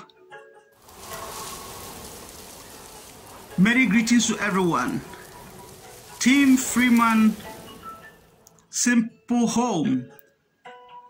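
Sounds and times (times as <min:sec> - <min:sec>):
steady hiss: 0:00.8 - 0:08.5.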